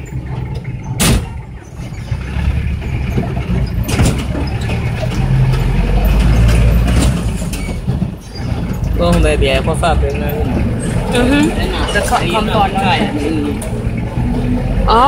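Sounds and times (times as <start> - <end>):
minibus engine and road noise: 0.0 - 15.0.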